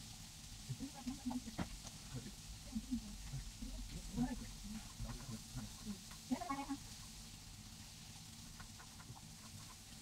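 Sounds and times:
low steady background: 0.0s - 10.0s.

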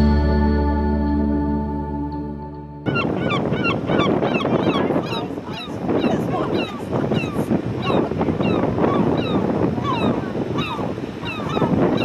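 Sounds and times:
guitar music: 0.0s - 3.0s
gulls calling: 2.8s - 12.0s.

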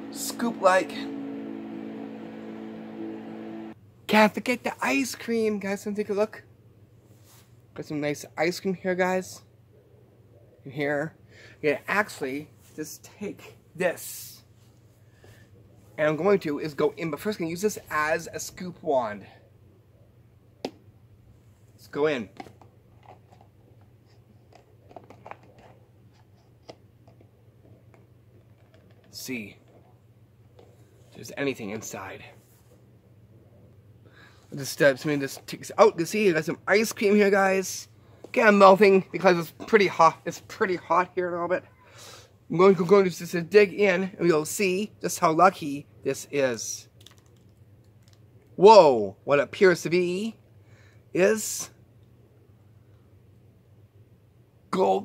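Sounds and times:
hum of low held tones: 0.0s - 4.0s.

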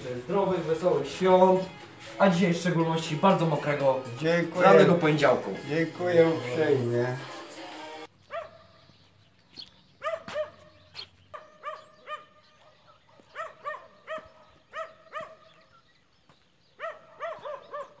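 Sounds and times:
dog barking: 8.3s - 8.8s, 10.0s - 15.6s, 16.8s - 18.0s.

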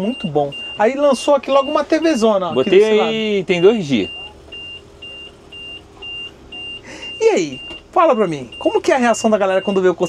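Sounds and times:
warning buzzer beeping: 0.0s - 10.0s.

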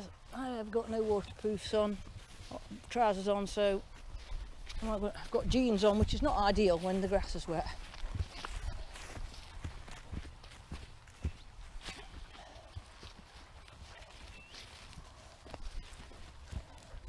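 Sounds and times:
footsteps in wet grass: 0.0s - 17.0s
rustling of grass and bracken: 0.0s - 17.0s.

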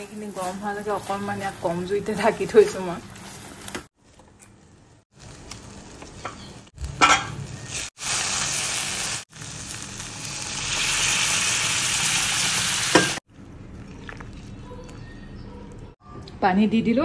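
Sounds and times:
fish and vegetables sizzling: 0.0s - 13.2s
water hissing in hot pan: 7.8s - 13.2s.

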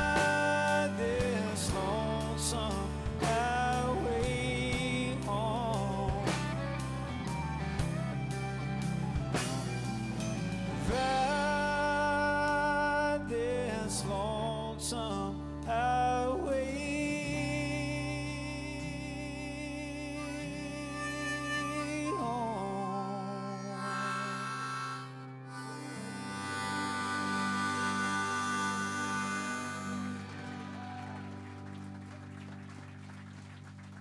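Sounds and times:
country band playing: 0.0s - 34.0s
fiddle with vibrato: 20.0s - 31.4s.

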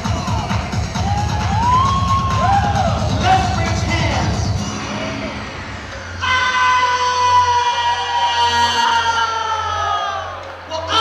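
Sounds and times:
house dance backing track: 0.0s - 6.8s.

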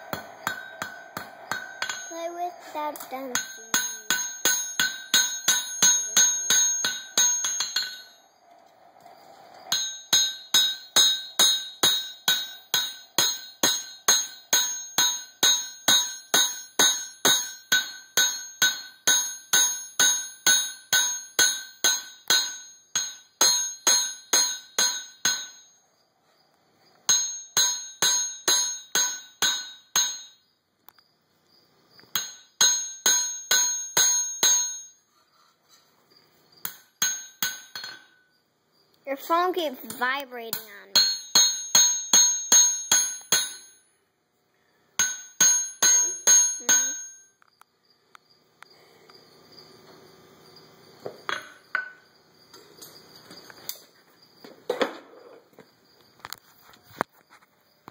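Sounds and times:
hammer striking blade on anvil: 0.0s - 2.4s, 3.0s - 8.2s, 9.6s - 25.7s, 27.1s - 30.4s, 32.1s - 34.9s, 36.6s - 38.2s, 40.5s - 43.9s, 45.0s - 47.3s.

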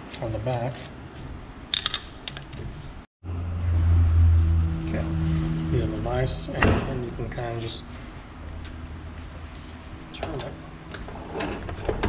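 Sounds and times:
loud steady low hum: 3.2s - 12.0s.

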